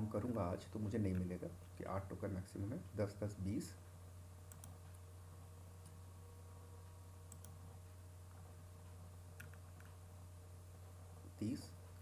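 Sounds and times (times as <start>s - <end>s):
computer mouse clicks: 4.5s - 5.0s, 7.3s - 7.6s, 9.4s - 10.0s.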